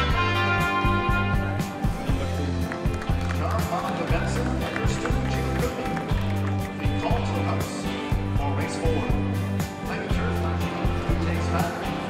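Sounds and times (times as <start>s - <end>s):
music with drum beat and bass: 0.0s - 12.0s.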